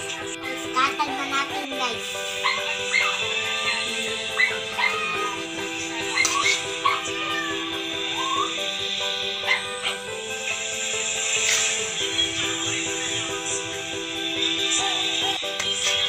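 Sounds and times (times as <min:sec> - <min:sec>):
short high rising yips: 0:02.4 - 0:08.6.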